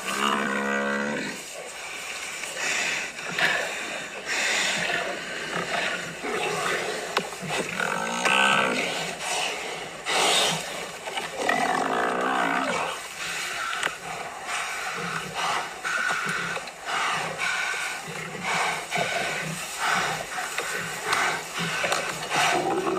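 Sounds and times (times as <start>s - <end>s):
lions growling and snarling: 0.0s - 22.9s
drawn-out animal calls: 9.8s - 22.9s.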